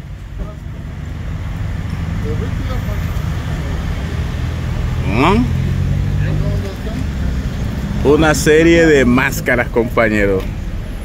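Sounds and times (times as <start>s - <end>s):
car engine humming: 0.0s - 11.0s
faint voices of passers-by: 0.0s - 11.0s.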